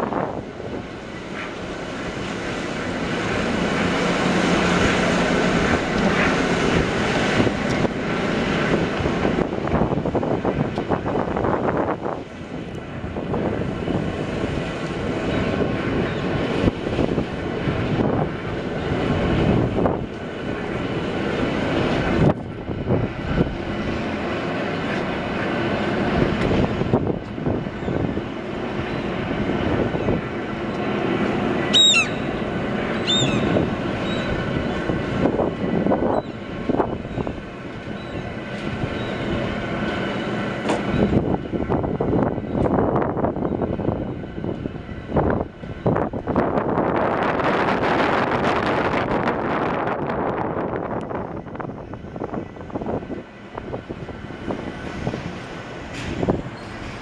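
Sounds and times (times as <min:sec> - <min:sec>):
bridge machinery rumble and hum: 0:00.0 - 0:57.0
short high squeals: 0:31.7 - 0:32.3.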